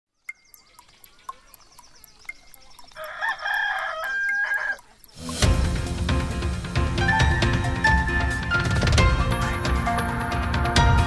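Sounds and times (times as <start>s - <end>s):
clock ticking: 0.3s - 6.2s
rooster crowing: 3.0s - 4.9s
theme music with heavy bass: 5.2s - 11.0s.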